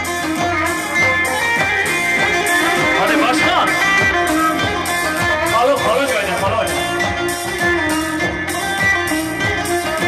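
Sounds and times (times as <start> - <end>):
amplified plucked-string melody: 0.0 - 10.0
live folk dance music: 0.0 - 10.0.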